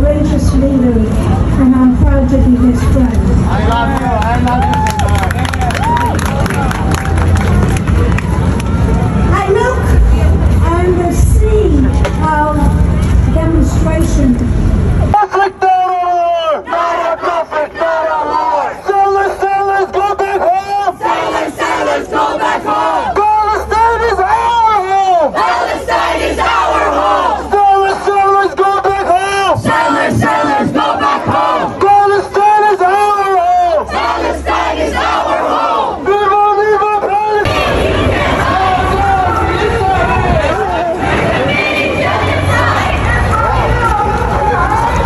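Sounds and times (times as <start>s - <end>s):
heavy low rumble: 0.0s - 15.2s, 37.4s - 45.0s
crowd voices: 0.0s - 45.0s
man chanting through megaphone: 15.2s - 21.7s, 27.5s - 33.9s.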